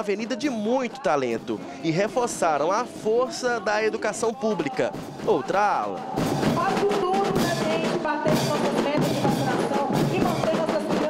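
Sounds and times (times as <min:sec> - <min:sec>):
snare drums: 0:00.8 - 0:11.0
bass drums: 0:01.4 - 0:11.0.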